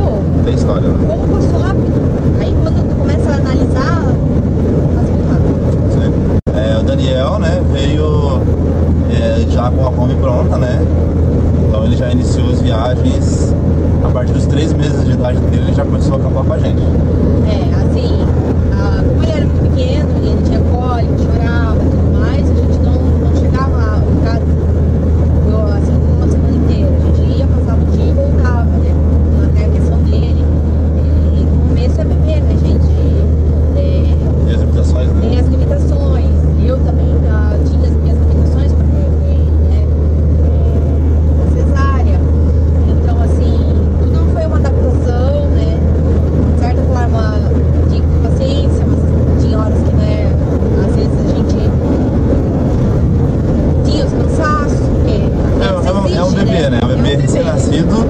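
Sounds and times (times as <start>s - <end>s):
voices talking: 0.0s - 24.7s, 25.4s - 52.4s, 53.7s - 58.0s
engine drone and road noise: 0.0s - 58.0s.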